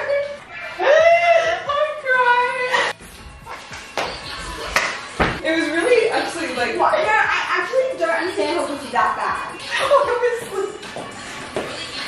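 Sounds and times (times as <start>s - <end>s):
people dancing on hard floor: 3.0s - 5.4s, 10.3s - 12.0s.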